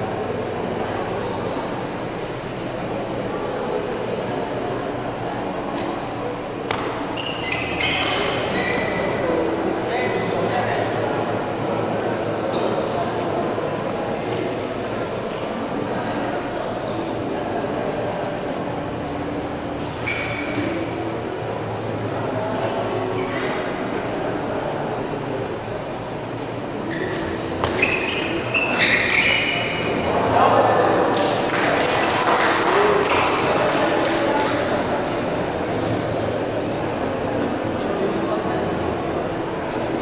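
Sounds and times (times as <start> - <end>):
spectators noise: 0.0 - 40.0.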